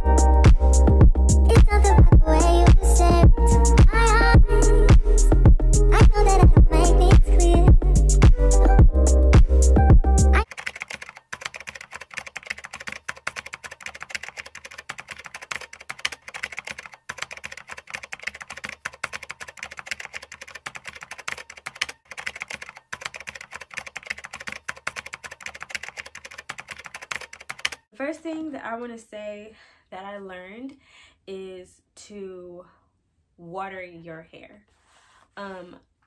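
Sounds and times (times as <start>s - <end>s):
rapid keyboard typing: 10.4s - 27.9s.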